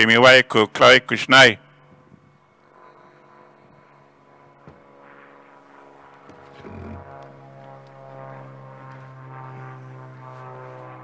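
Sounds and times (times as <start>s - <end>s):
low droning hum: 1.5s - 11.0s.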